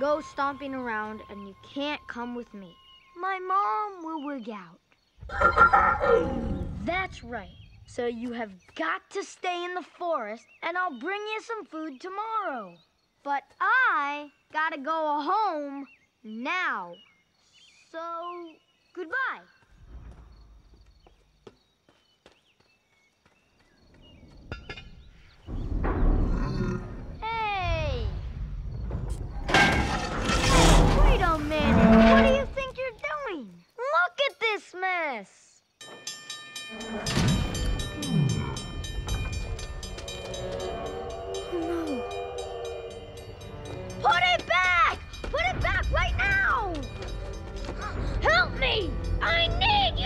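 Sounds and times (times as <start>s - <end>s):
metal creaking and screeching: 24.4s - 27.2s, 28.3s - 32.8s, 35.9s - 50.0s
metal crunching and grinding: 29.0s - 32.8s
railroad crossing bell ringing: 35.8s - 49.6s
train horn: 39.8s - 44.0s.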